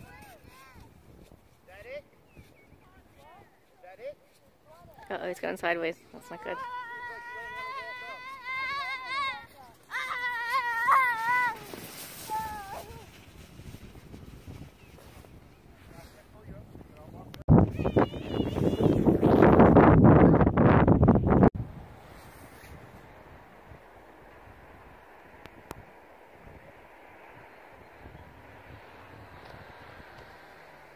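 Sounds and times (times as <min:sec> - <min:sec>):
child squealing: 0:06.5 - 0:12.9, 0:17.7 - 0:19.0.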